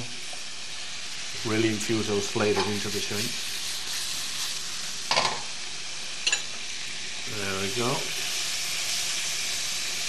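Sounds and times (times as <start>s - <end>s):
prawns sizzling in frying pan: 0.0s - 10.0s.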